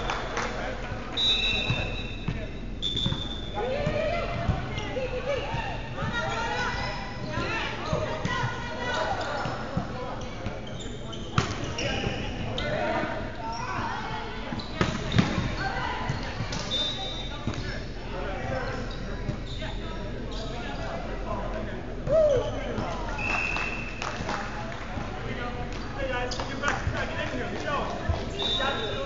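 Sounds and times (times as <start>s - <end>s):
indistinct chatter of many voices: 0.0s - 29.0s.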